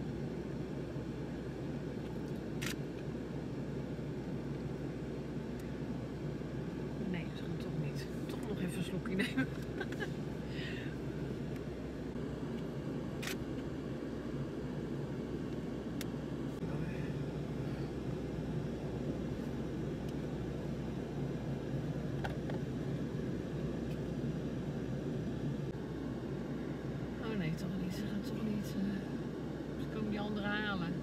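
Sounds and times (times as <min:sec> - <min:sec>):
vehicle engine idling: 0:00.0 - 0:31.0.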